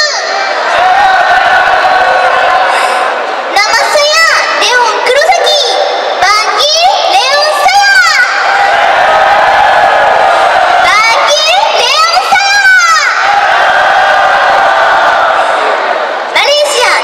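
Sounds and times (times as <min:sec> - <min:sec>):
audience cheering and shouting: 0:00.0 - 0:17.0.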